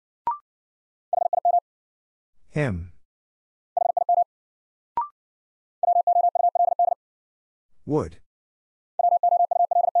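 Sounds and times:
morse code tone: 9.0s - 10.0s.

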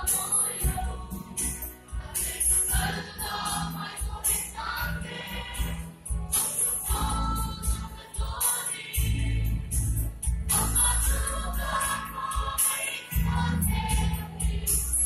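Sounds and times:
jingling percussion: 0.0s - 15.0s
mixed choir singing in harmony: 0.0s - 15.0s.

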